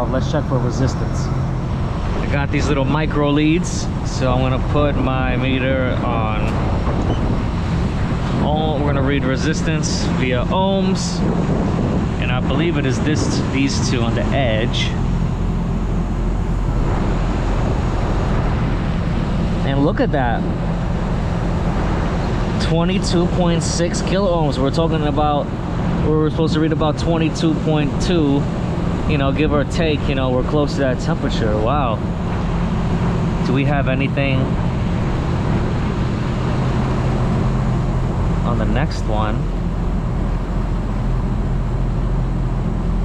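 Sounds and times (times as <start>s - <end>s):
rooftop machinery humming: 0.0s - 43.0s
wind buffeting microphone: 0.0s - 43.0s.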